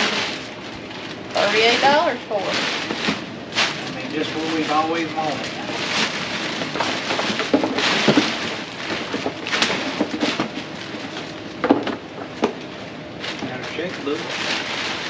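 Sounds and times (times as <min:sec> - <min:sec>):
tissue paper and plastic bags rustling: 0:00.0 - 0:15.0.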